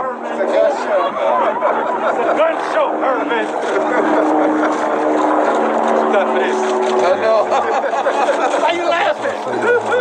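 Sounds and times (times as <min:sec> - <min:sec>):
people talking: 0:00.0 - 0:04.2, 0:06.0 - 0:10.0.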